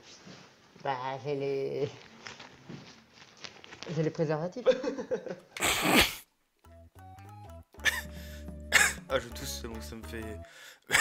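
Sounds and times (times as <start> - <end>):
background music with low bass: 6.6 - 11.0
man coughing: 7.8 - 8.1, 8.7 - 9.1.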